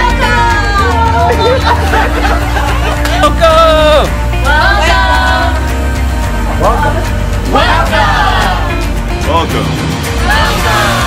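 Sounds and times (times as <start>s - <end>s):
background music with bass: 0.0s - 11.0s
people laughing: 0.9s - 3.4s.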